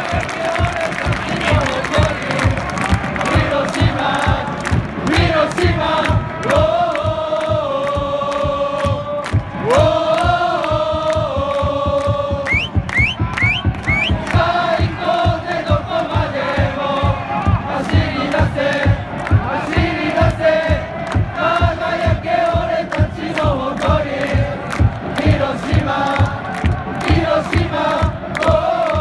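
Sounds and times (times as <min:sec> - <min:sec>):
crowd singing together: 0:00.0 - 0:29.0
fast drum beat: 0:00.0 - 0:29.0.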